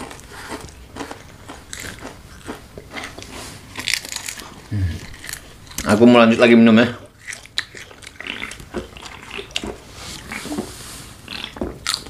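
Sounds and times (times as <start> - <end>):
person gulping and swallowing: 4.6 - 5.3.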